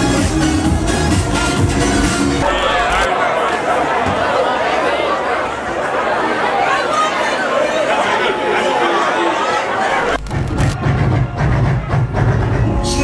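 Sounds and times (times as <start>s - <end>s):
loud crowd chatter: 0.0s - 13.0s.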